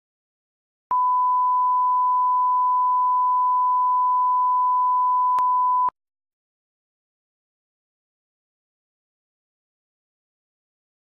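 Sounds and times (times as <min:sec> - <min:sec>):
test-tone beep: 0:00.9 - 0:05.9.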